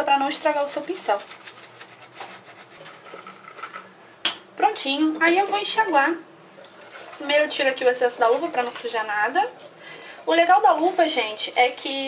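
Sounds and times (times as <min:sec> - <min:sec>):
brush scrubbing silicone glove: 0:00.2 - 0:03.2.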